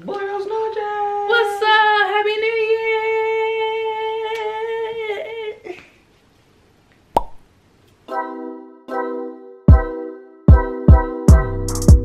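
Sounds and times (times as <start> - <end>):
plop sound effect: 7.2 - 7.4.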